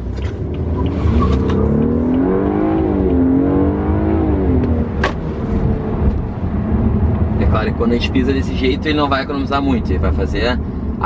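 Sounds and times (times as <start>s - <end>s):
car engine accelerating: 0.0s - 8.8s.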